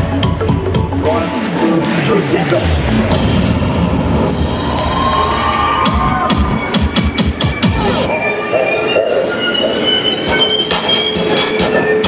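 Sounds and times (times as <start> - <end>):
electronic dance music: 0.0 - 4.2, 5.0 - 12.0
sharp percussive hits: 2.9 - 6.1
high screeching effect falling: 4.1 - 12.0.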